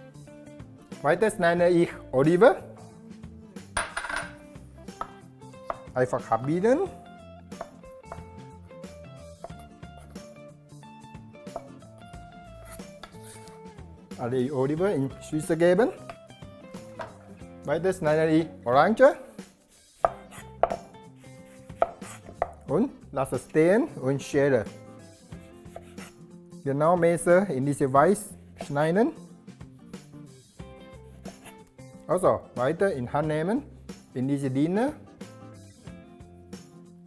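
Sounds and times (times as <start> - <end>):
background music: 0.0 - 37.0
knife slicing orange: 12.5 - 13.7, 19.6 - 22.7, 25.6 - 26.2
knife knocking on cutting board: 17.0 - 17.2, 20.0 - 20.9, 21.8 - 22.6.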